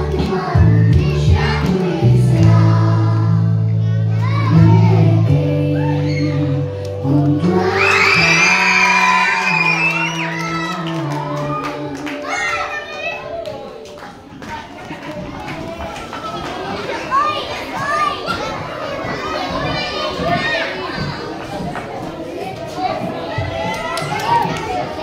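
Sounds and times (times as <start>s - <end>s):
children chattering and shouting: 0.0s - 25.0s.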